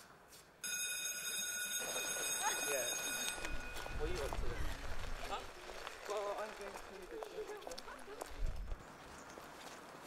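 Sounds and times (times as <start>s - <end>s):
electric school bell ringing: 0.6s - 4.4s.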